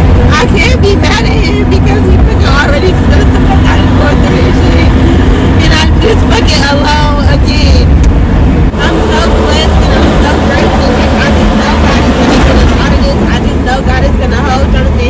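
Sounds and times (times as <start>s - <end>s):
minivan cabin rumble: 0.0s - 15.0s.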